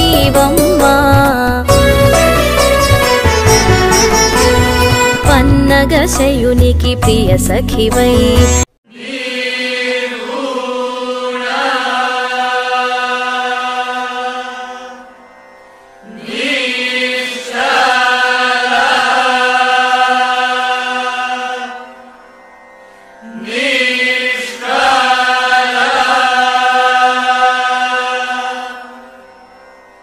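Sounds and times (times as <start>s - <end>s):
devotional song: 0.0s - 15.2s, 16.0s - 22.2s, 22.9s - 29.2s.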